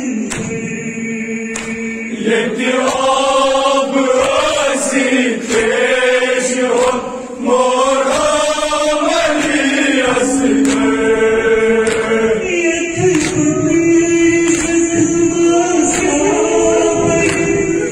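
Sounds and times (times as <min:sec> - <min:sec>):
voices chanting a lament: 0:00.0 - 0:17.9.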